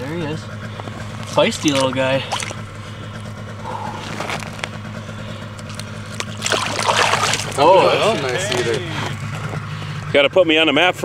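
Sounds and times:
steady low hum: 0.0 - 11.0
light water splashes: 1.2 - 2.7, 5.6 - 7.6.

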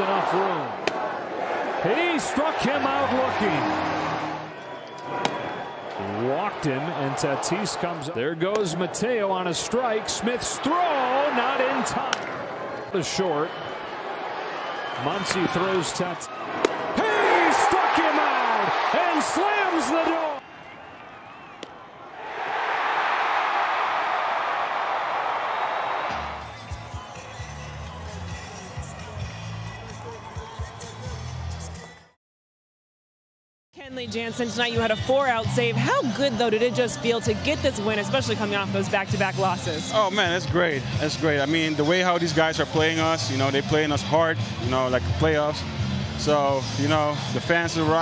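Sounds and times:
stadium crowd cheering: 0.0 - 32.2.

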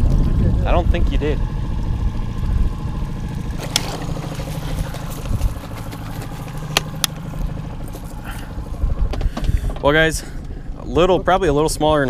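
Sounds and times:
outboard motor running: 0.0 - 12.0
sharp clicks and knocks: 3.6 - 7.5.

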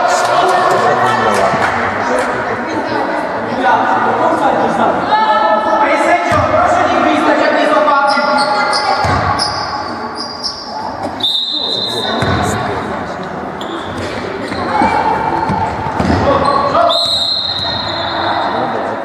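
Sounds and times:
basketball bouncing in echoing hall: 6.3 - 6.7, 8.3 - 11.2, 12.0 - 13.0, 13.8 - 18.3
referee's whistle: 10.2 - 12.3, 16.4 - 18.6.

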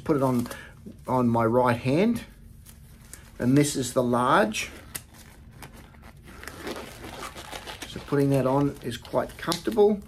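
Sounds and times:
rubber glove rustling: 0.0 - 10.0.

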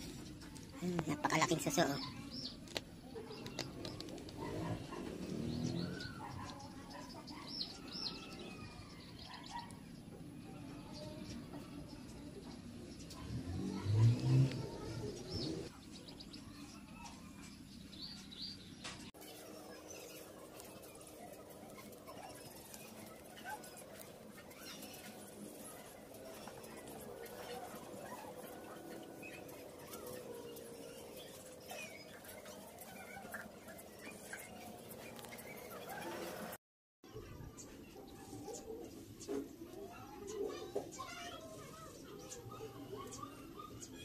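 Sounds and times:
birds chirping: 0.0 - 44.0.

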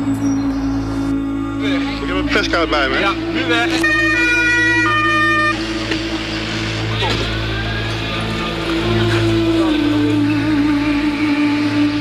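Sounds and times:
ambulance two-tone siren: 3.7 - 5.7.

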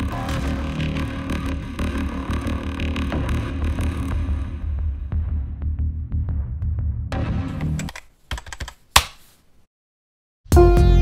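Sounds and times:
keyboard typing clicks: 7.6 - 9.1.

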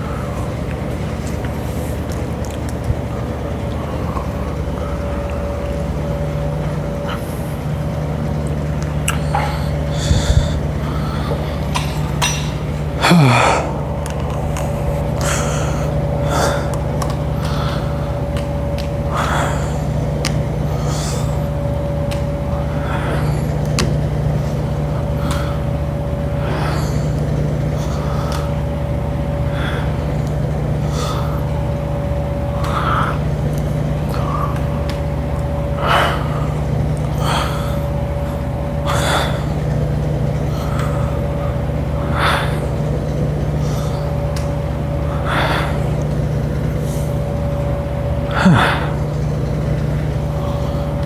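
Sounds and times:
low machine hum: 0.0 - 51.0.

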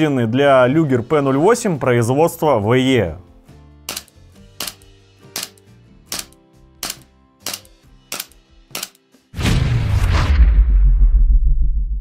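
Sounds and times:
airsoft pistol shots: 5.4 - 9.0.

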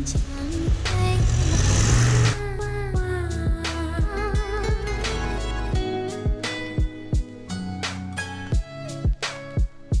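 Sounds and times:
tires churning through snow: 0.0 - 2.6
pickup engine under load: 0.0 - 2.9
background music with beat: 0.0 - 10.0.

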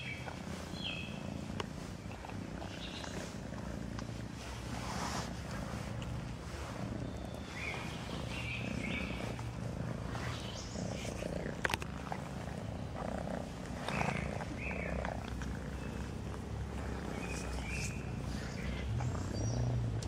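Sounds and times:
cat purring: 0.0 - 20.0.

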